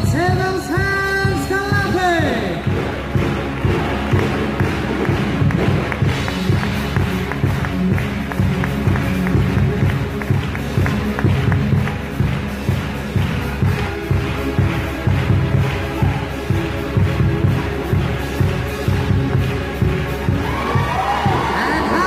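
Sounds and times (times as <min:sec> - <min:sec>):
show music with driving beat: 0:00.0 - 0:22.0.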